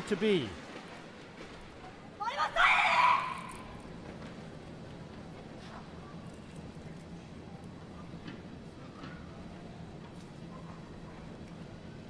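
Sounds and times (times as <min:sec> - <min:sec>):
low murmur of a hall: 0:00.0 - 0:12.0
woman shouting: 0:02.2 - 0:03.7.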